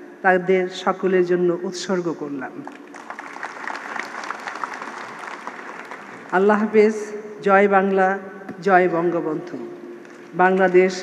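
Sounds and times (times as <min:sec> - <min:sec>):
audience applauding: 0:02.8 - 0:06.4.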